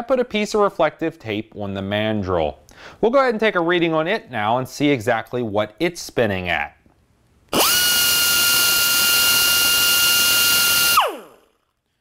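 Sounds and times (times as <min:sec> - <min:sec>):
air die grinder whining: 0:07.5 - 0:11.6.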